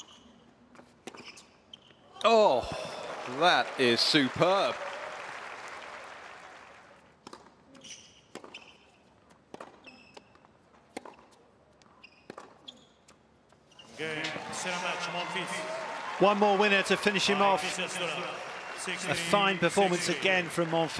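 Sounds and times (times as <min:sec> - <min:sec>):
crowd applause: 0:02.3 - 0:07.0, 0:14.0 - 0:20.9
tennis ball bouncing on court: 0:07.2 - 0:13.2.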